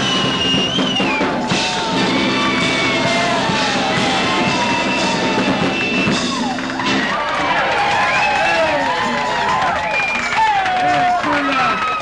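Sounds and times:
drum kit: 0.0 - 12.0
rock band playing: 0.0 - 12.0.

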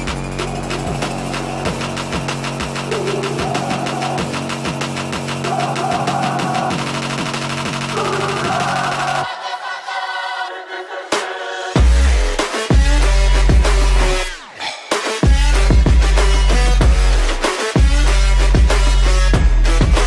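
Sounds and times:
electronic music with heavy bass: 0.0 - 20.0.

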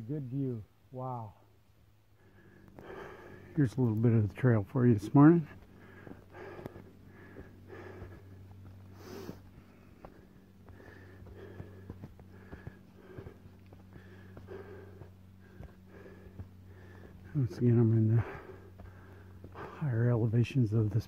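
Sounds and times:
faint low hum: 0.0 - 21.0
person breathing hard: 2.1 - 3.6, 5.4 - 17.4, 18.0 - 19.8
faint footfalls: 5.1 - 20.3.

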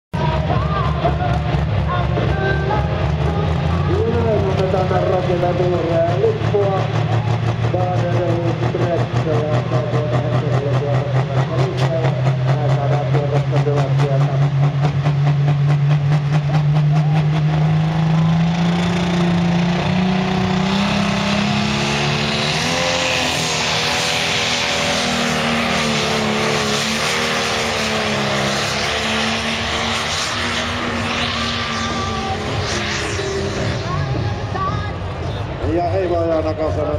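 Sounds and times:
diesel engine running under load: 0.1 - 36.9.

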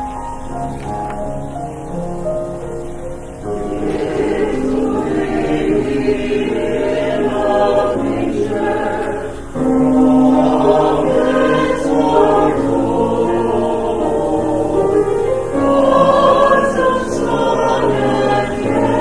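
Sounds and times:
mixed choir singing: 3.4 - 19.0.

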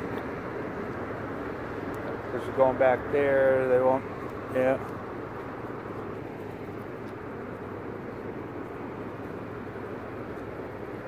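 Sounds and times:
traffic hum: 0.0 - 11.0.

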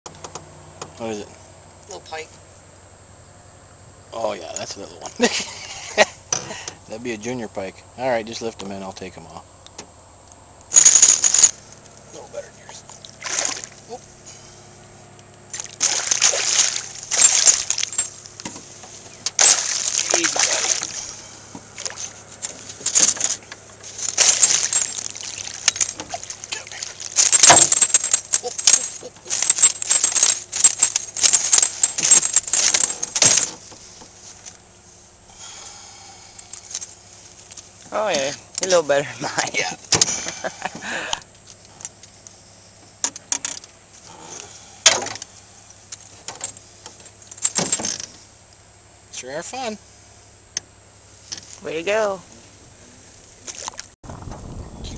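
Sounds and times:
fish splashing in water: 13.1 - 13.8, 15.5 - 17.9, 19.4 - 21.1, 24.2 - 27.2.

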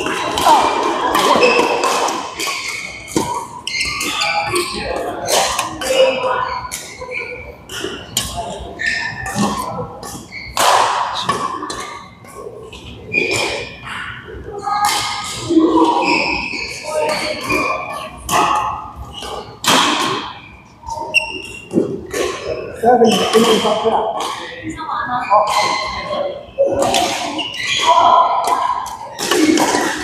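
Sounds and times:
badminton rackets striking shuttlecocks: 0.0 - 12.1, 14.8 - 20.6, 26.8 - 30.0.

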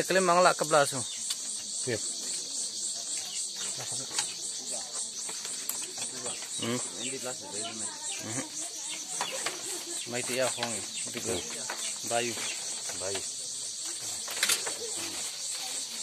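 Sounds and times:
pulsing insect chorus: 0.0 - 16.0
people talking: 1.8 - 16.0.

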